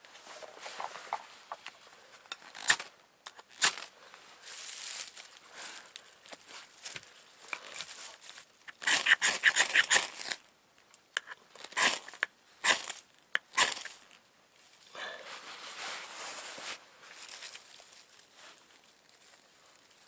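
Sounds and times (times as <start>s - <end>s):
knife scraping ferro rod: 8.7s - 10.4s, 11.2s - 13.9s.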